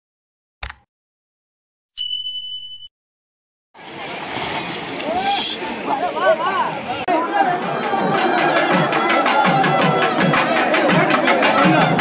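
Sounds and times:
crowd chatter: 0:04.6 - 0:12.0
quick steady drum beat: 0:07.8 - 0:12.0.

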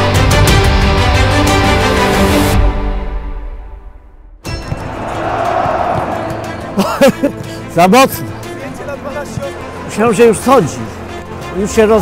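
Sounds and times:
background music: 0:00.0 - 0:12.0
footballs being kicked: 0:04.5 - 0:06.8.

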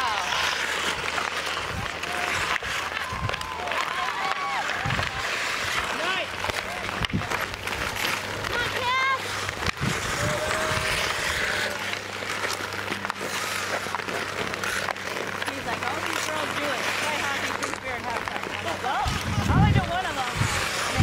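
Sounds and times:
hockey stick clacks: 0:00.0 - 0:21.0
skate blades scraping ice: 0:00.0 - 0:21.0.

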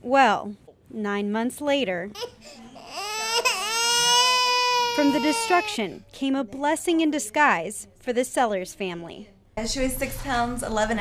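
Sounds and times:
baby crying: 0:02.2 - 0:06.0.

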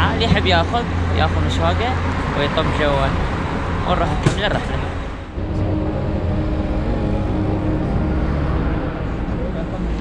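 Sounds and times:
road traffic noise: 0:00.0 - 0:10.0
indistinct voices: 0:03.8 - 0:10.0.

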